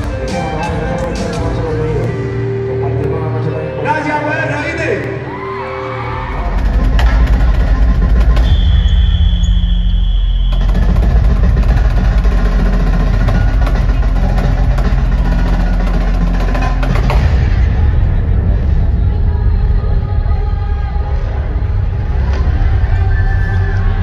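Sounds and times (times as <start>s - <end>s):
loud music with heavy bass: 0.0s - 24.0s
marching snare drum: 10.5s - 17.5s.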